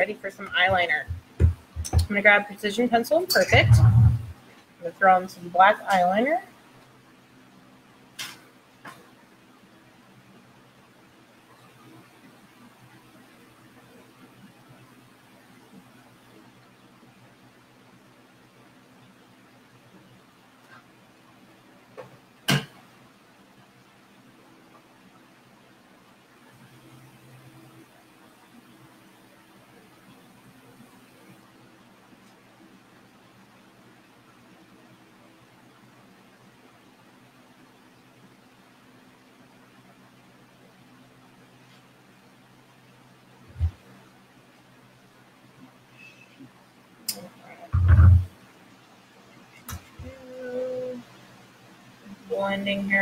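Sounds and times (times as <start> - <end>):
faint low room hum: 0.0 - 53.0.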